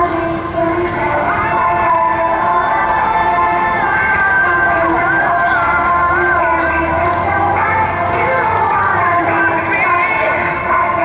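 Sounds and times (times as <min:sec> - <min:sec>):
music over outdoor loudspeakers: 0:00.0 - 0:11.0.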